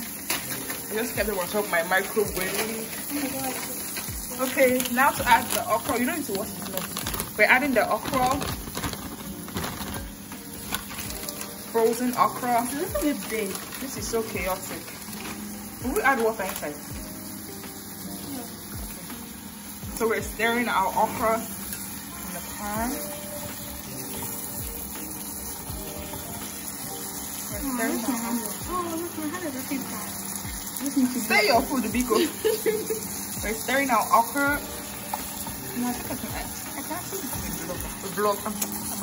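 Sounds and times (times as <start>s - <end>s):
frozen okra pouring into pot: 2.5s - 16.9s.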